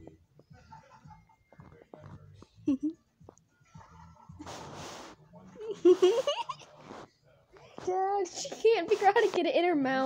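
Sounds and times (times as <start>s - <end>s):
breathy hiss near microphone: 0.0s - 10.0s
person laughing: 2.6s - 3.0s, 5.6s - 6.7s.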